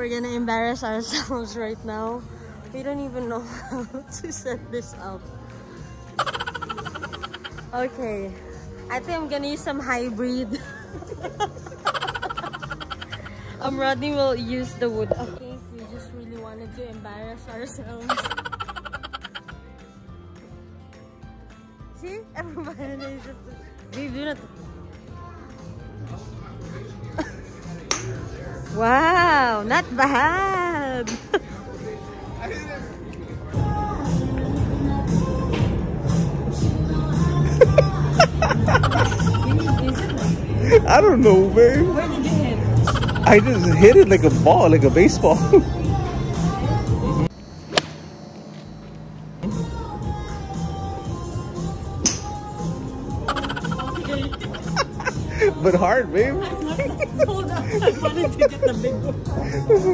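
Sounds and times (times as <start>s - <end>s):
background music: 0.0s - 48.0s, 49.2s - 59.9s
golf club striking ball: 27.9s - 28.2s, 47.7s - 48.1s, 52.0s - 52.4s.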